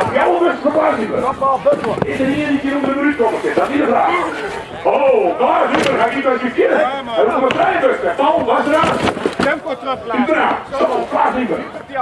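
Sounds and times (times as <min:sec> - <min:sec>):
crowd noise: 0:00.0 - 0:12.0
voices talking and calling: 0:00.0 - 0:12.0.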